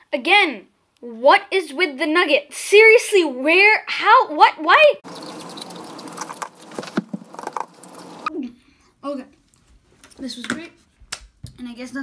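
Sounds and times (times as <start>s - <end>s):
person chewing food: 5.0s - 8.3s.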